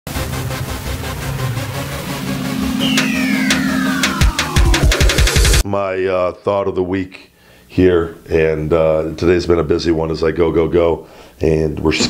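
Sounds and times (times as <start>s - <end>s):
sharp hits: 0.2s - 5.6s
low held tones: 2.4s - 5.1s
whistling tone sliding down: 2.7s - 4.3s.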